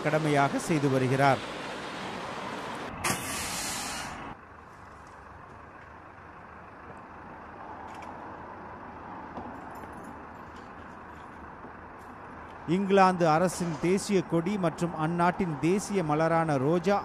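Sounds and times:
road traffic rumble: 0:00.0 - 0:17.0
loud hiss: 0:00.7 - 0:04.3.

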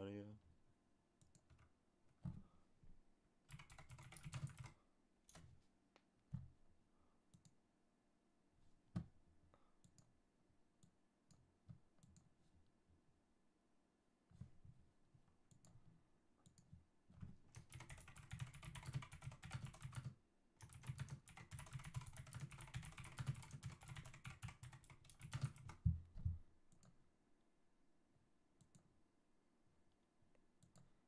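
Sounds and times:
computer keyboard typing: 0:03.5 - 0:05.4, 0:17.5 - 0:25.8.

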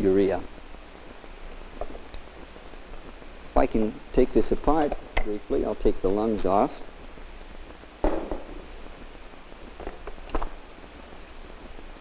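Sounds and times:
film soundtrack hum and hiss: 0:00.0 - 0:12.0.

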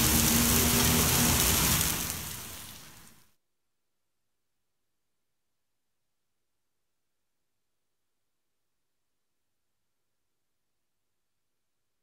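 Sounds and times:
rain hissing: 0:00.0 - 0:03.3.

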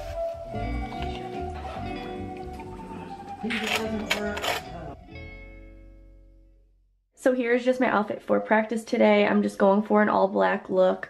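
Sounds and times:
background music: 0:00.0 - 0:06.7.

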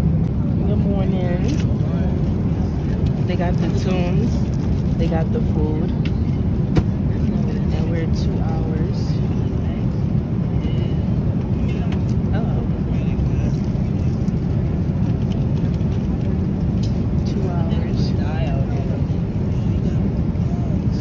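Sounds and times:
airliner cabin drone: 0:00.0 - 0:21.0
faint voices: 0:00.0 - 0:21.0.

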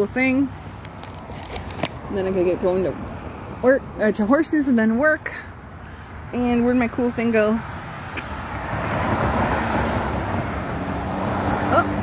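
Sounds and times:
road vehicle passing: 0:00.0 - 0:12.0.

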